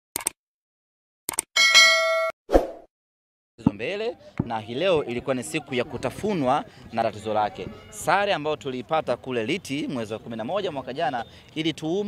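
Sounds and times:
bright bell ding: 0:01.6 - 0:02.4.

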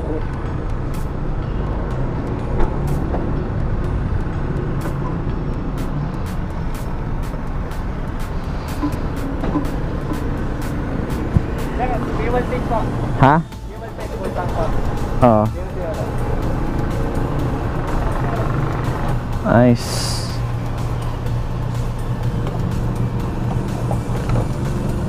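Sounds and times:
low rumble of traffic: 0:00.0 - 0:25.0.

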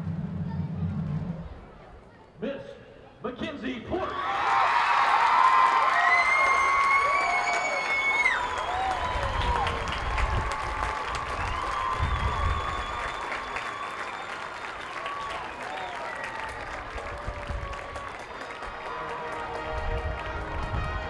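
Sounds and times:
crowd applauding: 0:04.2 - 0:21.0
music playing: 0:18.5 - 0:21.0.

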